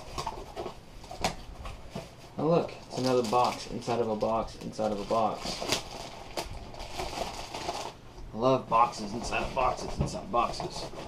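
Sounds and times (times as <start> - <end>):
plastic bag crinkling: 2.7 - 8.0.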